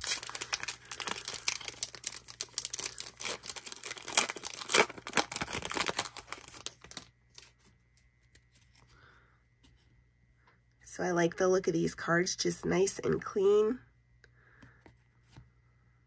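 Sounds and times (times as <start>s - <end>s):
foil wrapper tearing and crinkling: 0.0s - 7.6s.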